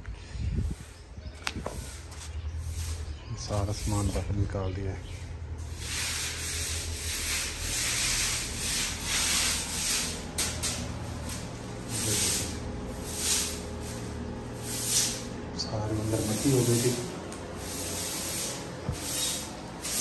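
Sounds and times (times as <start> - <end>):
broom sweeping grit on marble floor: 0.7 - 4.6, 5.6 - 20.0.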